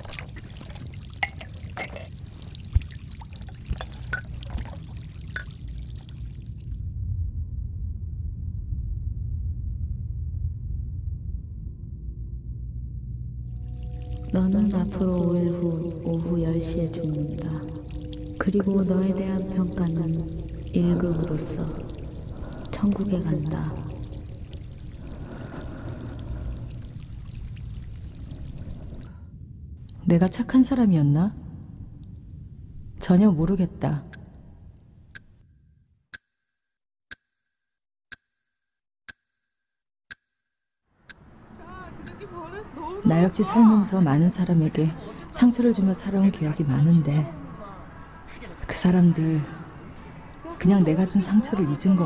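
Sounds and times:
running water pouring: 0.0 - 6.8, 13.6 - 29.1.

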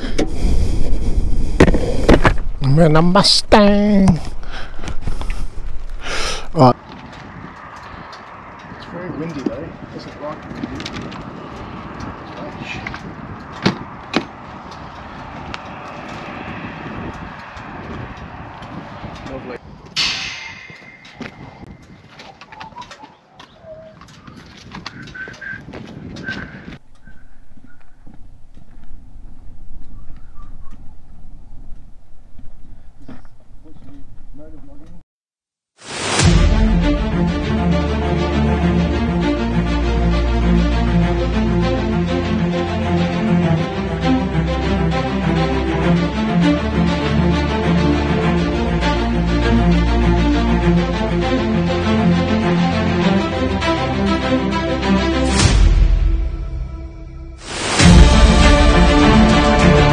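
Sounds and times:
outdoor rushing noise: 4.2 - 23.3, 35.8 - 59.9
birds calling: 19.7 - 29.0, 29.7 - 31.6.

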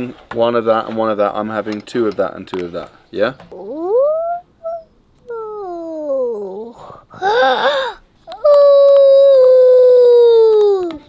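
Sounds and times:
toddler whining and crying: 3.5 - 11.0.

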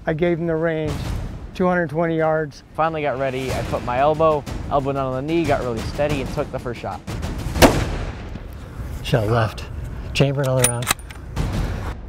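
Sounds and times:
rifle shot with echo: 7.2 - 8.5.

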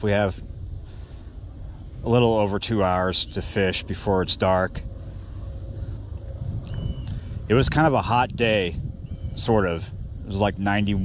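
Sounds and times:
breeze buffeting microphone: 0.0 - 11.0.

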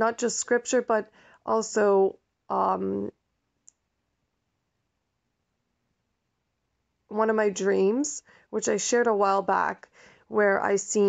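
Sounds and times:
person speaking: 0.0 - 3.1, 7.1 - 11.0.

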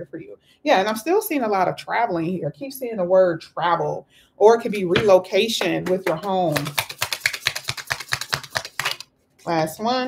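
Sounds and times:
cards being shuffled: 5.9 - 9.5.

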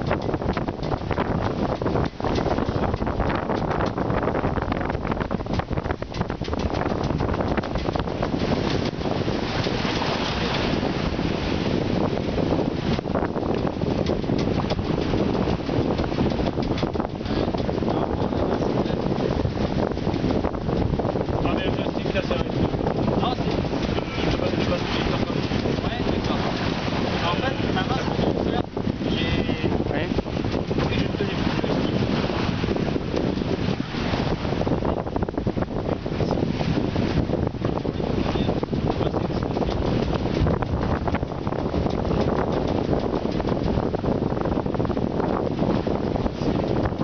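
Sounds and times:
water rushing along hull: 0.0 - 47.0
wind buffeting microphone: 0.0 - 47.0.

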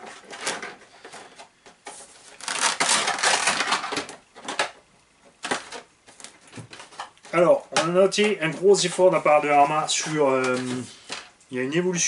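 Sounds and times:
plastic crinkling and clattering: 0.0 - 11.4.

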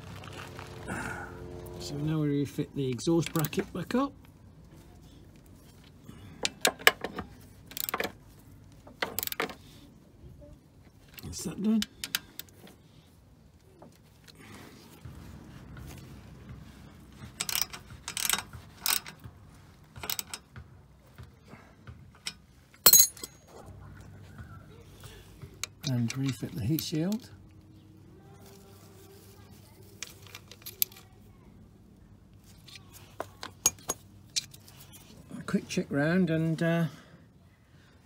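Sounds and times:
metallic clinks of bolts: 17.4 - 19.2, 22.2 - 23.5, 33.4 - 34.6.

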